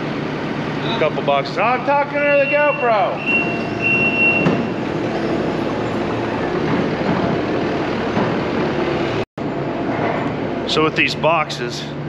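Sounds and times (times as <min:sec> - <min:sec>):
loader engine and hydraulics drone: 0:00.0 - 0:12.0.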